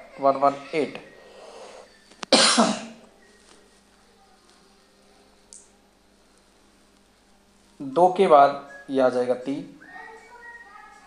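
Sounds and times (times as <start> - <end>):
man coughing: 2.3 - 3.0.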